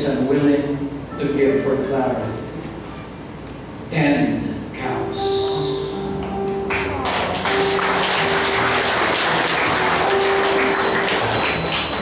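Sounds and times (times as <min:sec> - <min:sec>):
soft background music: 0:00.0 - 0:12.0
audience clapping: 0:06.7 - 0:12.0.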